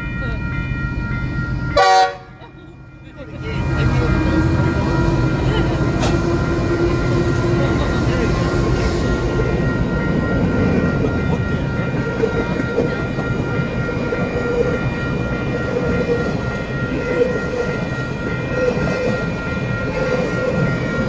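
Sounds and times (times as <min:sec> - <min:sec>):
high ringing tone: 0:00.0 - 0:21.0.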